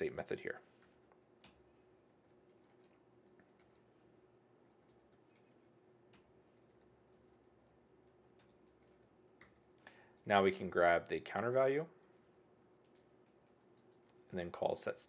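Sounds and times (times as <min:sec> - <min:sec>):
faint steady hum: 0:00.0 - 0:15.0
computer keyboard typing: 0:00.6 - 0:14.7.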